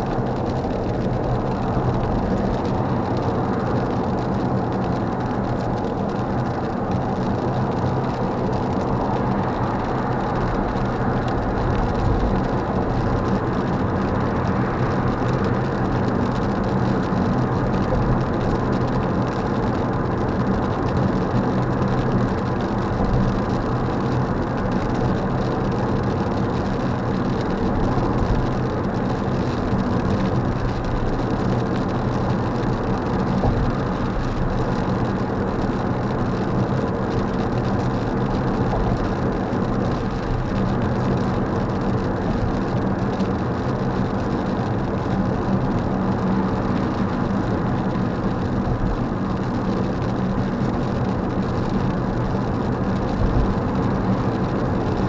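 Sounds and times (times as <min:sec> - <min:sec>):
low engine hum: 0:00.0 - 0:55.0
tyre noise on wet road: 0:00.0 - 0:55.0.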